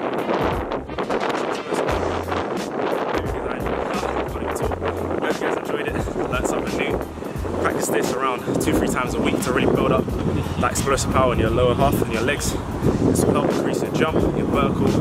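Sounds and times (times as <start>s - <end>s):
wind buffeting microphone: 0.0s - 15.0s
man's voice: 3.1s - 15.0s.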